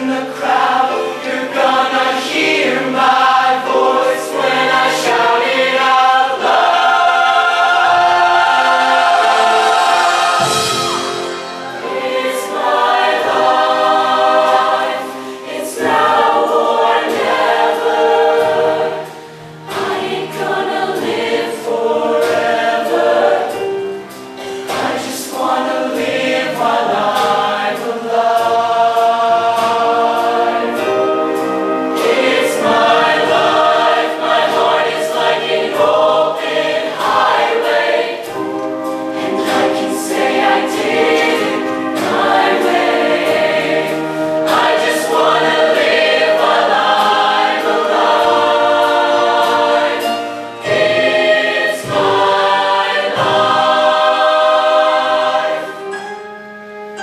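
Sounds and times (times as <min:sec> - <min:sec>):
mixed choir singing: 0:00.0 - 0:56.8
live band playing: 0:07.8 - 0:26.1, 0:26.7 - 0:36.1, 0:37.7 - 0:47.4.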